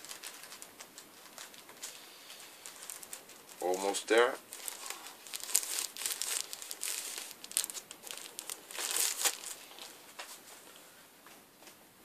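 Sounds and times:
record sleeve crinkling: 0.0s - 10.6s.

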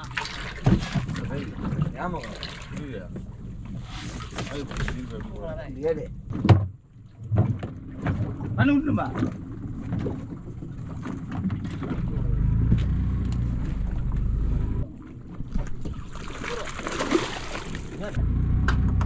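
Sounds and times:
boat engine rumble: 0.0s - 19.0s
men talking: 1.1s - 3.2s, 4.3s - 6.2s, 8.6s - 9.4s.

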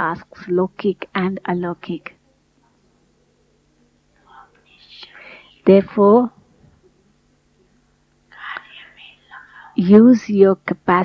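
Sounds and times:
faint sound system hum: 0.0s - 11.0s.

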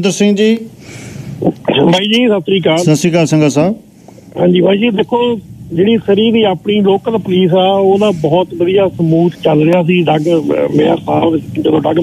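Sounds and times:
man talking over telephone: 0.0s - 0.7s, 1.4s - 12.0s.

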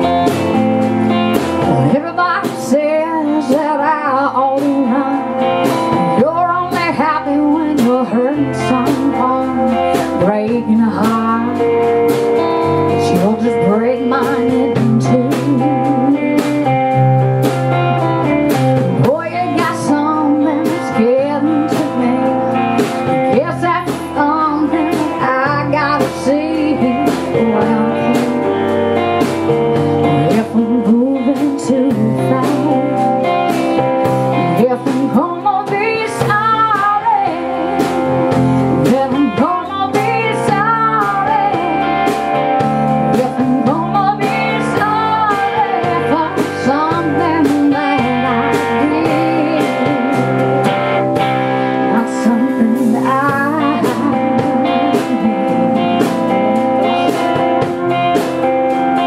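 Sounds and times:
guitar: 0.0s - 59.0s
steady drum beat: 0.0s - 59.0s
person singing: 1.5s - 16.9s, 18.9s - 29.2s, 30.0s - 57.9s.

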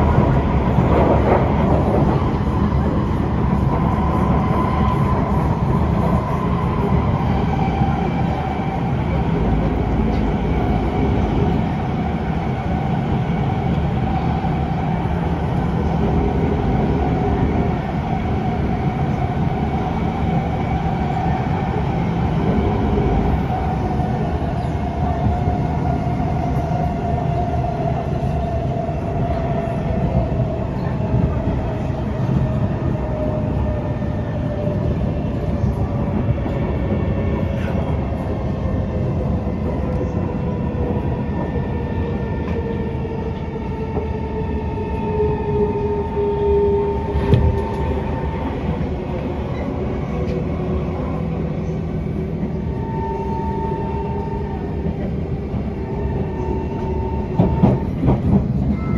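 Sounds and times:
wheels rumbling on rail: 0.0s - 58.9s.

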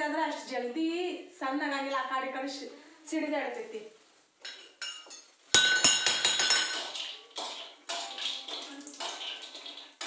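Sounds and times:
metal utensils and bowls clinking: 4.4s - 10.0s.

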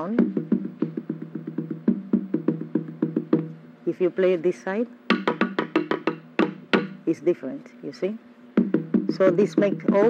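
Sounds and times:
wooden slit drum strokes: 5.1s - 7.0s.

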